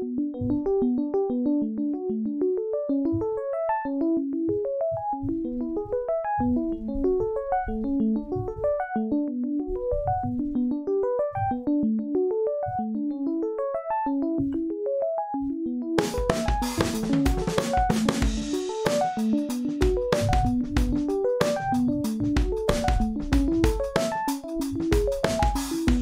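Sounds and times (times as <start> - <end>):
electric piano arpeggio: 0.0 - 26.0.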